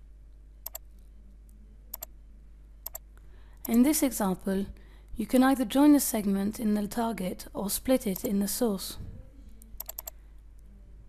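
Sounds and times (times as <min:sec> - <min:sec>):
low steady hum: 0:00.0 - 0:11.0
faint computer clicks: 0:00.6 - 0:01.0, 0:09.6 - 0:10.2.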